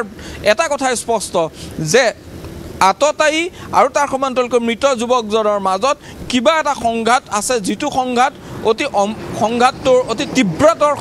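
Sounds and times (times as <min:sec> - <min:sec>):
man speaking into a microphone: 0:00.0 - 0:02.2, 0:02.8 - 0:11.0
faint road traffic: 0:00.0 - 0:11.0.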